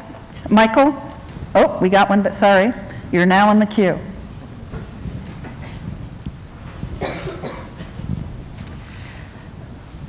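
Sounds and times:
low room noise: 0:00.0 - 0:10.0
person coughing: 0:07.0 - 0:07.9.

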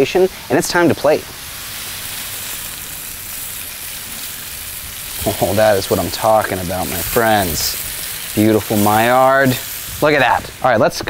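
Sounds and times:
meat sizzling on a griddle: 0:00.0 - 0:11.0.

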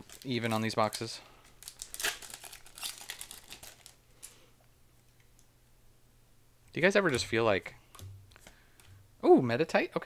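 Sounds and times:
foil wrapper crinkling and tearing: 0:00.0 - 0:04.3.

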